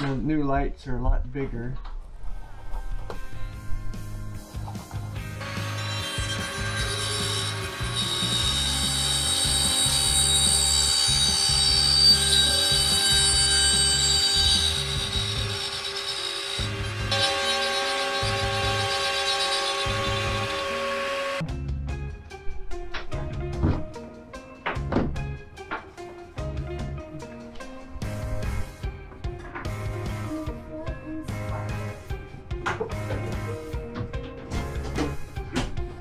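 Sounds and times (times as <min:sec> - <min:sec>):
background music: 0:00.0 - 0:20.7, 0:21.4 - 0:36.0
trim router cutting panel: 0:05.4 - 0:21.4.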